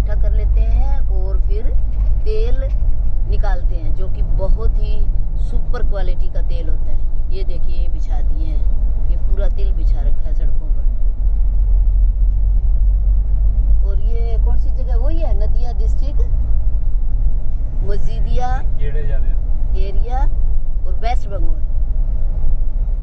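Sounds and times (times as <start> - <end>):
voices talking: 0.0 - 2.7, 3.3 - 10.9, 13.8 - 16.4, 17.8 - 21.6
tyres on paved road: 0.0 - 23.0
vehicle engine rumble: 0.0 - 23.0.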